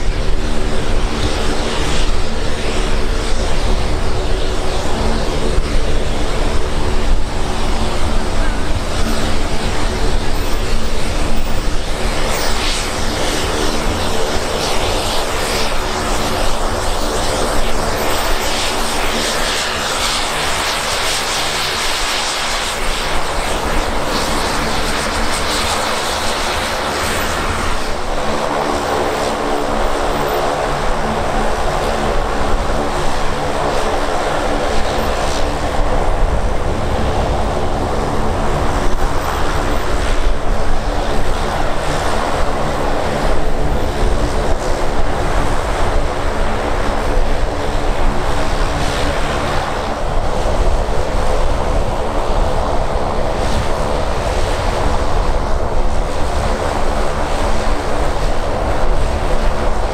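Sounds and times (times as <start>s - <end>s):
turboprop engines droning: 0.0s - 59.9s.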